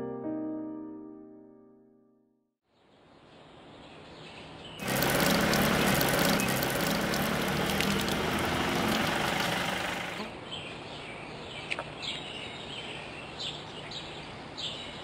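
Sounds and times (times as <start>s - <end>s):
water running from tap: 4.8s - 10.3s
water splashing onto paving: 4.8s - 10.3s.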